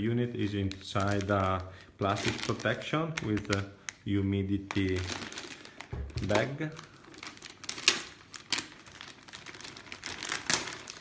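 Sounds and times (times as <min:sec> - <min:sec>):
plastic bag crinkling: 0:00.0 - 0:11.0.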